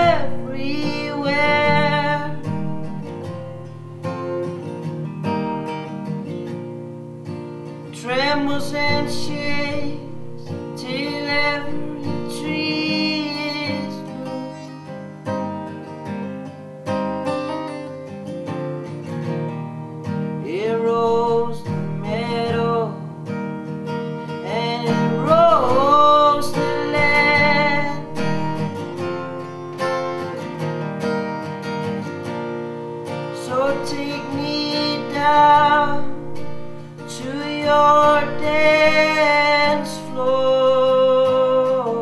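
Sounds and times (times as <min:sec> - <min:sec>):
person singing: 0:00.0 - 0:03.4, 0:07.9 - 0:15.0, 0:20.4 - 0:23.1, 0:24.4 - 0:30.5, 0:33.3 - 0:42.0
acoustic guitar strumming: 0:00.0 - 0:42.0.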